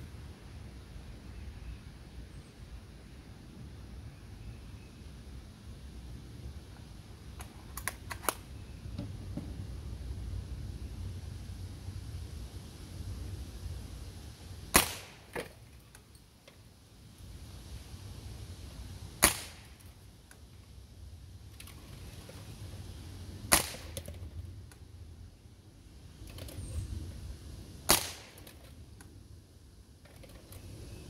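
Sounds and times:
pellet pistol shot pop: 14.7 - 15.5, 19.2 - 19.7, 23.5 - 24.1, 27.9 - 28.4.

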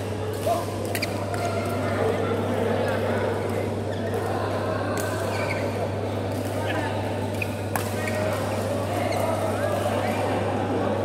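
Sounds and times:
players chattering: 0.0 - 11.0.

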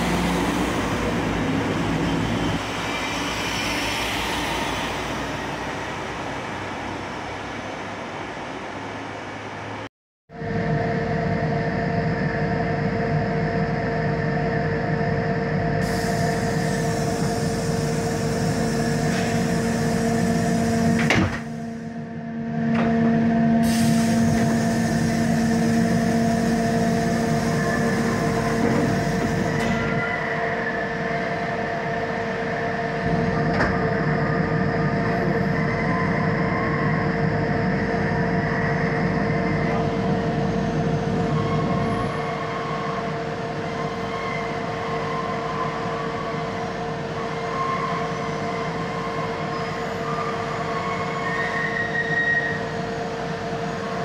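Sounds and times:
freight train rolling past: 0.0 - 9.8, 23.1 - 54.0
locomotive humming tone: 0.0 - 9.8, 10.4 - 54.0
wheels squealing: 38.5 - 54.0.

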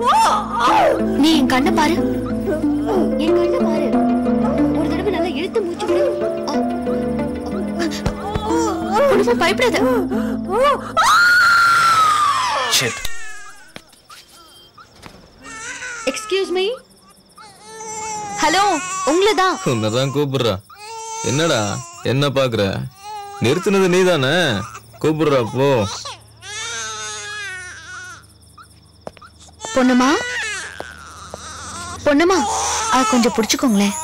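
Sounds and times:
woman screaming: 0.0 - 1.0, 10.5 - 12.9
baby crying: 0.0 - 1.2, 7.8 - 14.8, 15.4 - 16.8, 17.4 - 22.1, 22.9 - 34.0
film score low sustained notes: 0.0 - 11.2
short wavering cries: 0.0 - 22.2, 22.9 - 34.0.

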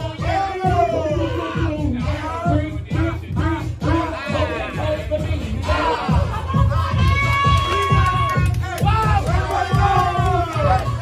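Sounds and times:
dance music kick drum: 0.0 - 11.0
crowd shouting: 3.9 - 11.0.

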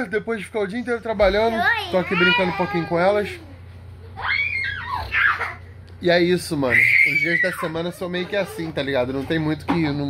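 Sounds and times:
child shrieking: 1.9 - 3.0, 4.2 - 5.6, 6.6 - 7.9.

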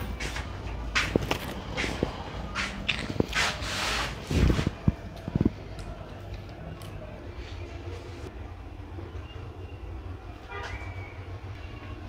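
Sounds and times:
steady low rumble: 0.0 - 11.6.

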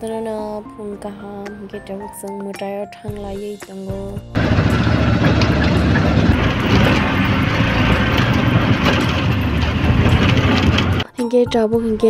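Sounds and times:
auto-rickshaw engine rumble: 4.4 - 11.1.

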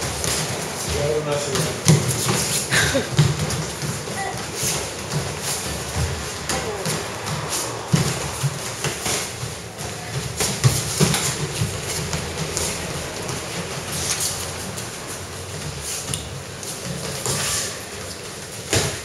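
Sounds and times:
boxing gloves tapping: 0.0 - 17.5.

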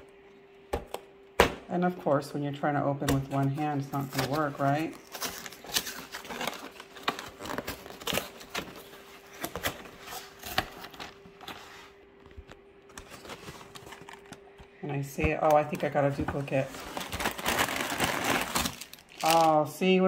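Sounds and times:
plastic bag crinkling: 3.6 - 9.4, 15.5 - 19.8
cardboard box crackling and tearing: 4.0 - 11.0, 16.6 - 19.6.

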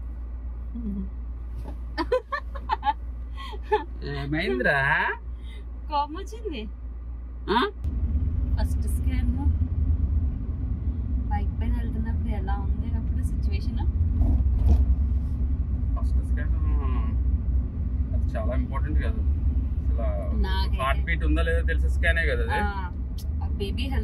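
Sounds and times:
car engine and road rumble: 0.0 - 24.0.

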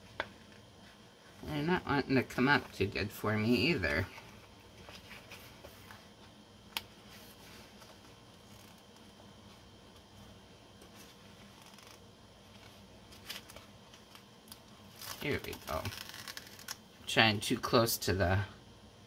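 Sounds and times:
paper rustling: 10.8 - 16.8.

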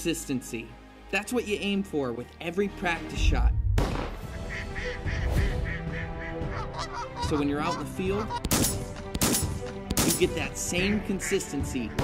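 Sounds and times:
background music: 0.0 - 12.0
geese honking: 4.3 - 8.5, 10.3 - 11.9.

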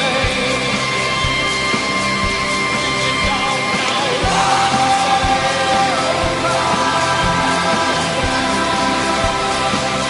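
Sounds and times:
electronic rock band playing: 0.0 - 10.0
sustained synthesizer tones: 0.6 - 10.0.

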